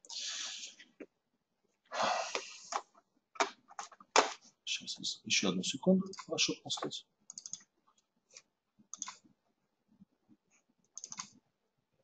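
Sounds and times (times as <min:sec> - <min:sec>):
breathy exhale: 0:01.9 - 0:02.7.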